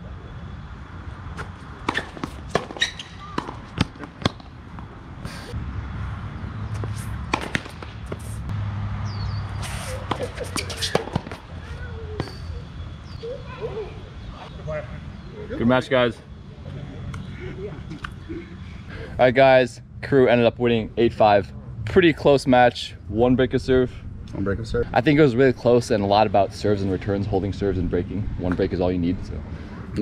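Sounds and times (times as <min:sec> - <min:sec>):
tennis balls struck by rackets: 0:01.4 - 0:05.3, 0:06.7 - 0:08.5, 0:09.6 - 0:11.6
balls bouncing on hard court: 0:01.8 - 0:04.9, 0:06.8 - 0:08.3, 0:09.9 - 0:11.5.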